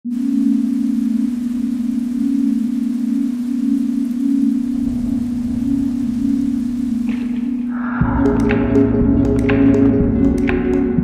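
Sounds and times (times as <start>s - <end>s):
low throbbing electronic tone: 0.0s - 11.0s
faint hiss: 0.1s - 8.0s
low rumble: 4.5s - 10.3s.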